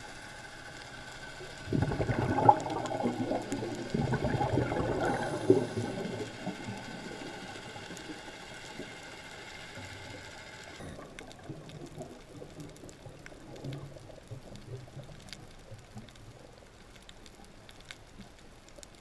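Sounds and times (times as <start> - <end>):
steady low hiss: 0.0 - 19.0
bubbles from regulator underwater: 1.7 - 7.6.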